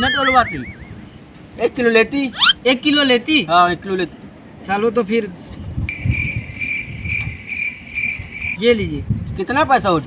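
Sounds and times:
cricket trilling: 0:05.9 - 0:08.7.

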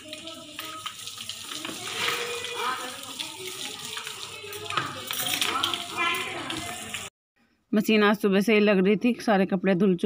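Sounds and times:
hose water spraying and splashing: 0:00.0 - 0:07.1.

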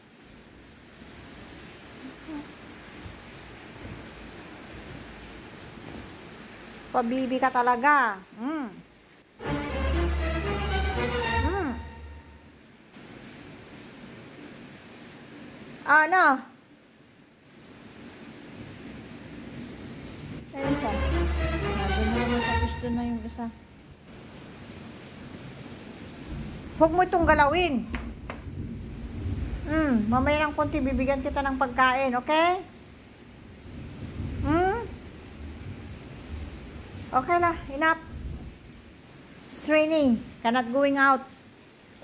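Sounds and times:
heavy rain heard indoors: 0:00.0 - 0:42.0.

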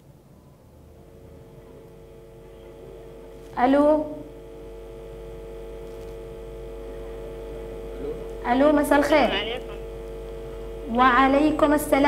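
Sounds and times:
telephone line electrical hum: 0:00.0 - 0:12.0.

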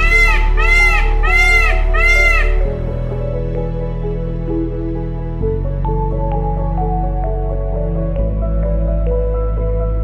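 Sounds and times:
peacock honking calls: 0:00.0 - 0:02.8
soft background music: 0:00.0 - 0:10.0.

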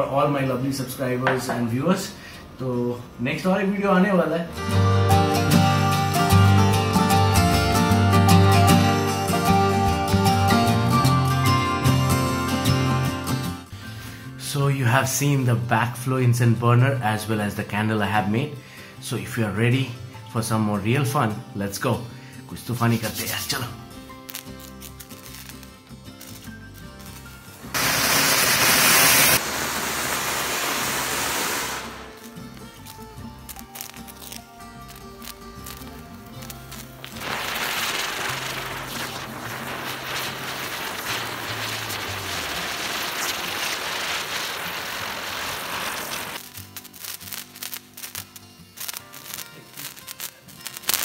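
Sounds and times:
background music: 0:04.5 - 0:14.8, 0:16.2 - 0:27.9, 0:31.9 - 0:43.0, 0:46.4 - 0:51.0
firework fountain hissing: 0:24.2 - 0:26.4, 0:27.0 - 0:51.0.

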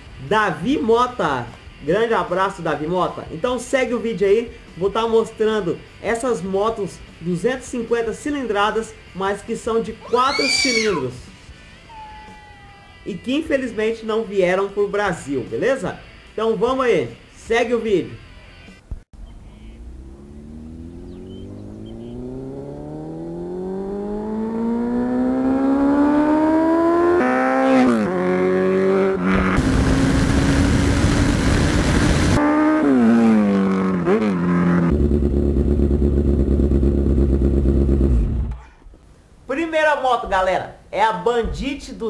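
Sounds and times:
motorcycle engine accelerating: 0:19.2 - 0:38.6.

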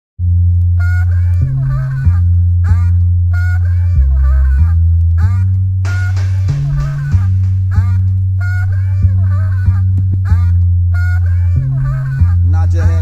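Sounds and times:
heavy bass line: 0:00.2 - 0:13.0
sliding higher tones: 0:00.2 - 0:13.0
hip hop instrumental beat: 0:00.7 - 0:13.0.

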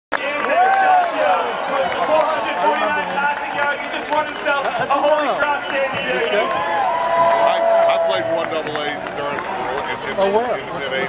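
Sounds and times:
spectators talking: 0:00.1 - 0:11.0.

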